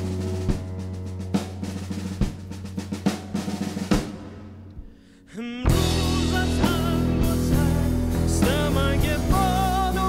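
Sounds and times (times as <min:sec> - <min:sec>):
drum kit hits: 0:00.0 - 0:05.0, 0:05.7 - 0:10.0
bass and sustained chord: 0:05.7 - 0:10.0.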